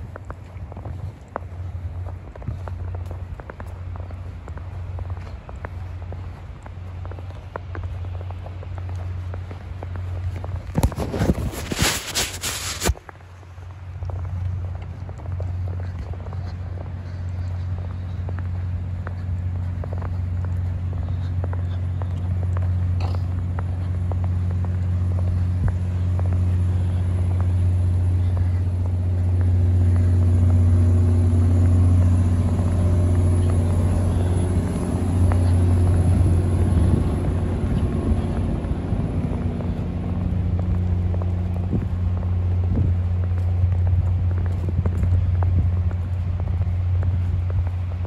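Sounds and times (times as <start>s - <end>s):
footsteps in snow: 0.0s - 48.0s
large engine humming: 0.0s - 48.0s.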